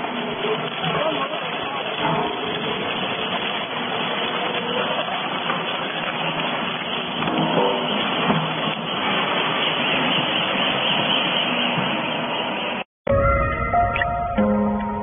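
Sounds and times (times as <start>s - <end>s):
cardboard shredder running: 0.0s - 10.2s.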